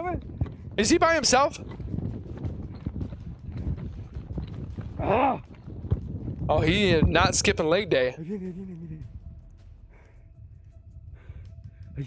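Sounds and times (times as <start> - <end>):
footsteps running on rough ground: 0.0 - 7.9.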